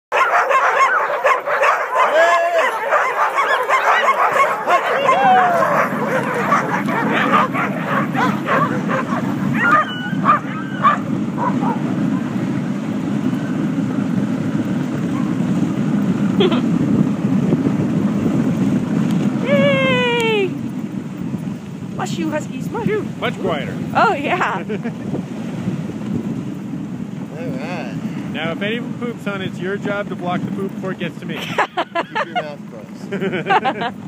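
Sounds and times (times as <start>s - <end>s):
dogs barking and howling: 0.1s - 12.5s, 15.0s - 15.4s
sled rushing noise: 0.1s - 34.0s.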